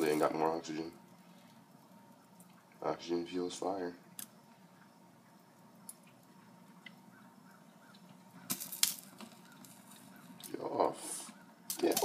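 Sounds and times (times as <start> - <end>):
small ticks: 1.1 - 2.8, 4.2 - 10.6.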